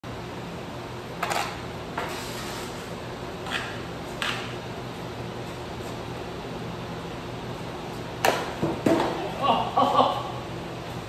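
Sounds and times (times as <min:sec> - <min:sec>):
fan humming: 0:00.0 - 0:11.0.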